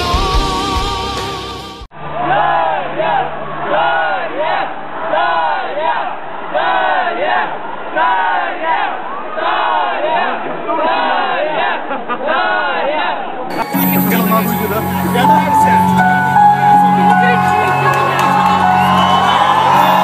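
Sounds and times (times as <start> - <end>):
audience chanting in unison: 3.8 - 13.4.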